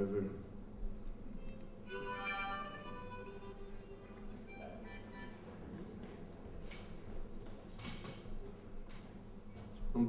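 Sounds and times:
harmonica chords: 1.3 - 5.8.

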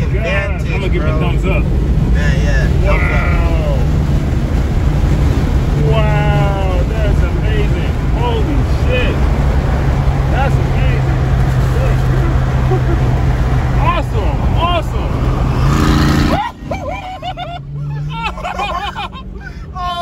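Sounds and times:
voices: 0.0 - 4.2, 5.7 - 20.0
car engine hum: 0.0 - 20.0
wind and road noise: 0.0 - 20.0.

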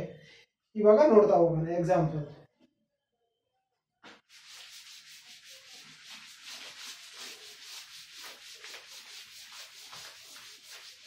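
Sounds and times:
cloth scrubbing chalkboard: 4.0 - 11.0.

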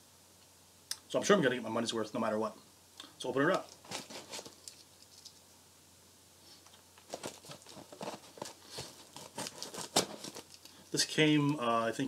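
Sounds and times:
package scraping and rustling: 3.5 - 5.4, 6.5 - 10.8
package tearing: 3.7 - 4.8, 7.0 - 10.8.

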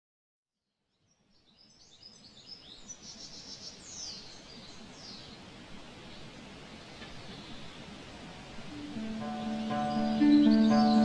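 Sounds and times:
birds chirping and whistling: 8.8 - 11.0.

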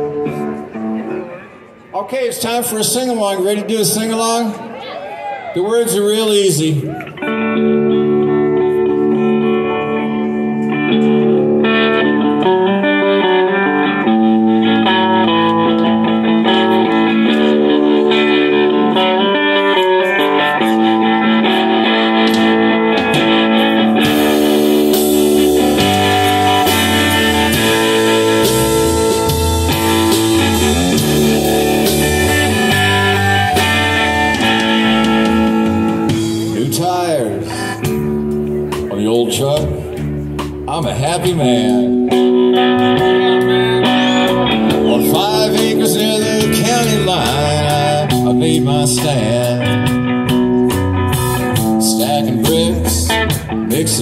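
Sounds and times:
electric guitars playing: 0.0 - 1.9, 5.8 - 54.0
bass line: 6.9 - 54.0
drums: 11.0 - 54.0.

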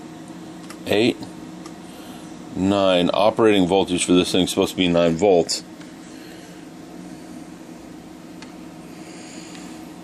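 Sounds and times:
low hum and room noise: 0.0 - 10.0.

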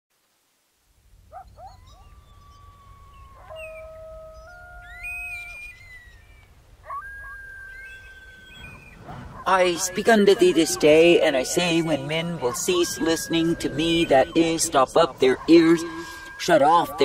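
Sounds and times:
animal howls: 1.3 - 17.0
low wind-like rumble: 7.6 - 12.5.

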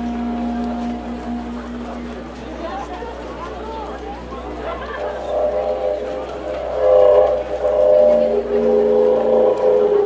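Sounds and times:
wooden wind instrument: 0.0 - 10.0.

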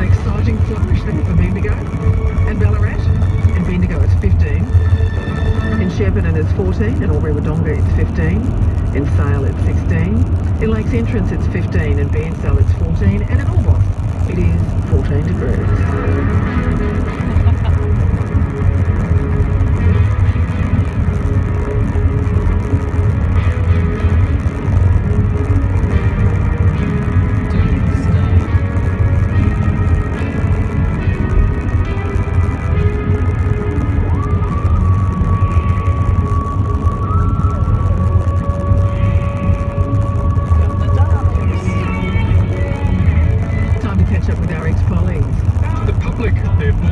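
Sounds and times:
car engine and tyres rumble: 0.0 - 46.9
car radio music: 0.0 - 46.9.

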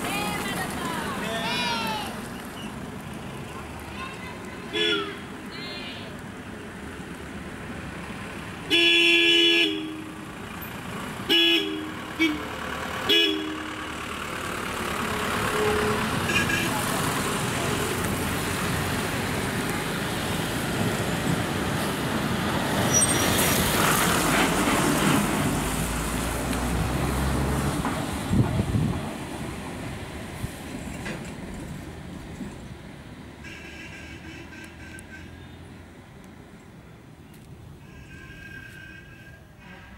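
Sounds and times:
bus engine rumble: 0.0 - 39.9
road vehicle engines: 0.0 - 39.9
vehicle horn: 4.7 - 5.2, 8.7 - 10.2, 11.3 - 14.0, 15.1 - 16.8, 33.4 - 35.6.

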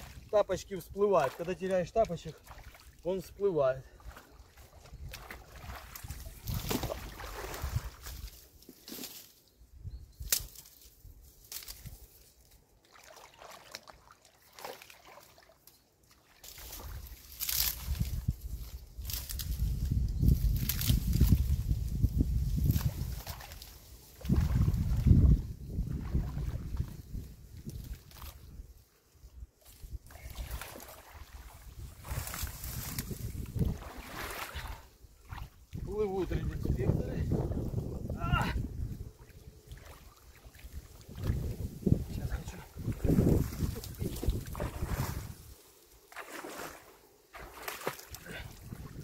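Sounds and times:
wind rumble on microphone: 0.0 - 1.0, 4.7 - 8.3, 16.8 - 45.6, 48.2 - 49.0
water sloshing and splashing: 0.0 - 9.3, 11.5 - 19.4, 22.5 - 28.6, 29.6 - 37.8, 39.0 - 49.0
reed stalks crackling: 0.0 - 9.4, 10.2 - 25.1, 29.6 - 37.0, 39.2 - 48.8.

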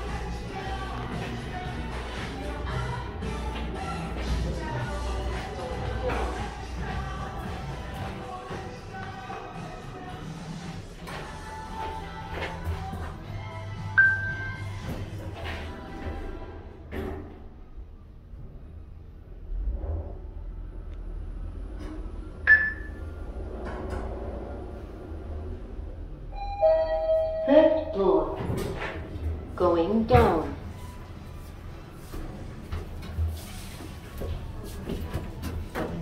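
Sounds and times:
background music: 0.0 - 17.3
chime dings: 14.0 - 14.6, 26.4 - 28.0.

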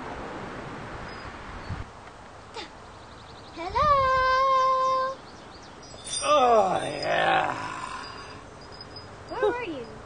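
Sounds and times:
man groaning: 6.2 - 8.4.

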